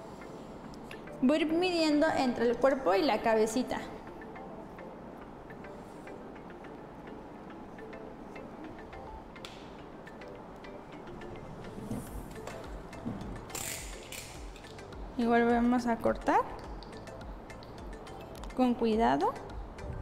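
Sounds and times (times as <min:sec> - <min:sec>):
faint background music: 0:00.0 - 0:20.0.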